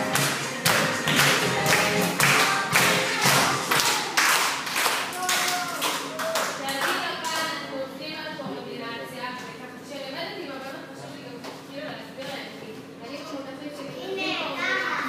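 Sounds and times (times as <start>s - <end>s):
music: 0.0s - 3.9s
hands clapping: 0.0s - 7.5s.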